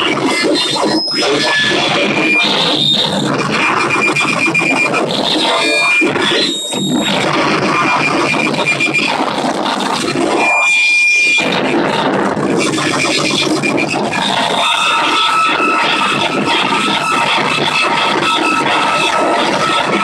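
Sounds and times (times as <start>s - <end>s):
crackling grinding electronic noise: 0.0s - 20.0s.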